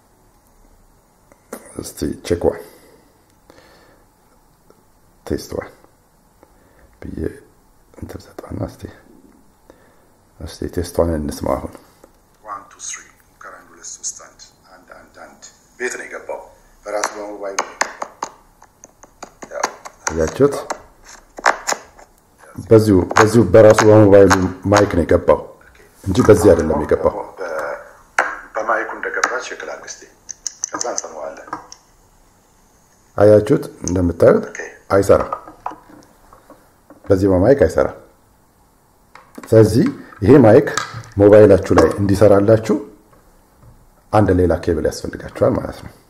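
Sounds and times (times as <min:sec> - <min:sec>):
man speaking: 0:12.4 - 0:17.8, 0:19.4 - 0:20.8, 0:22.4 - 0:31.7, 0:33.2 - 0:35.4, 0:39.4 - 0:43.0.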